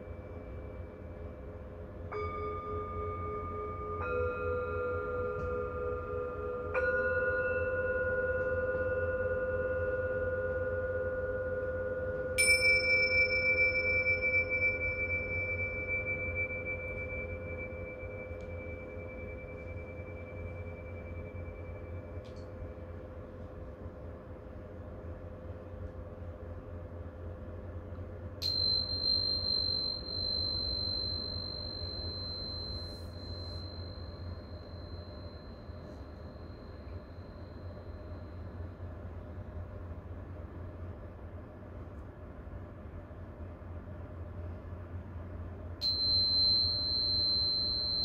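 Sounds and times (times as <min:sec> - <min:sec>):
singing bowls ringing: 0:00.0 - 0:23.5, 0:28.3 - 0:39.8, 0:45.8 - 0:48.0
small cymbals clashed: 0:28.4 - 0:34.2.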